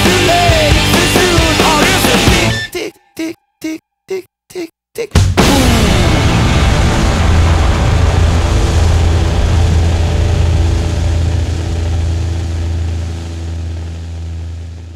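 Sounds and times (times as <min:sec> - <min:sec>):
distorted guitars and bass chord: 0:00.0 - 0:02.8, 0:05.4 - 0:14.9.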